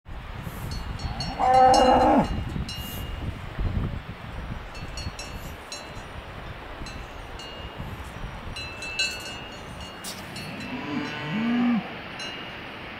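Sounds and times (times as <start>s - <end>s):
cowbells clanking: 0.7s - 3.2s, 8.6s - 11.4s
cow mooing: 1.2s - 2.3s, 10.5s - 11.9s.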